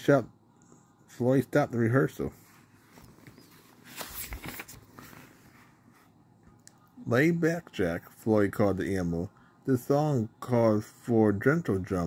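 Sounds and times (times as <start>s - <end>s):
low room noise: 0.0s - 12.0s
rustling: 2.4s - 6.2s.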